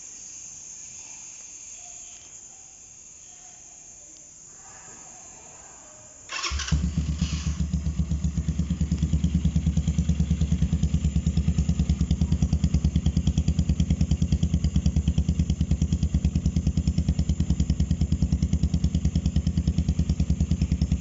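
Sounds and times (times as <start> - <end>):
motorcycle engine starting and idling: 6.3 - 21.0.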